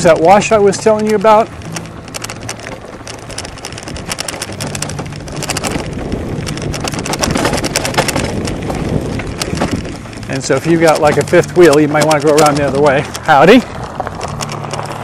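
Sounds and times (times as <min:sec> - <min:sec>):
tyres crunching over gravel: 0:00.0 - 0:15.0
wind on microphone: 0:00.0 - 0:15.0.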